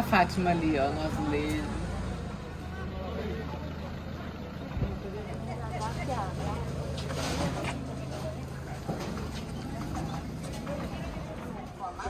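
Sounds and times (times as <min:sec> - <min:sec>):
low engine-like hum: 0:00.0 - 0:12.0
voices of passers-by: 0:00.0 - 0:12.0.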